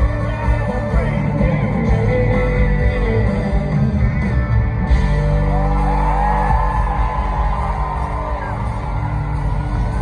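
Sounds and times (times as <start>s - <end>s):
country-rock band playing: 0.0s - 10.0s
crowd whooping and yelling: 4.9s - 10.0s.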